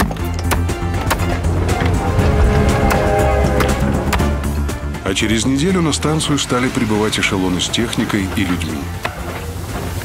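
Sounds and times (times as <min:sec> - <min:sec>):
background music with low drone: 0:00.0 - 0:10.0.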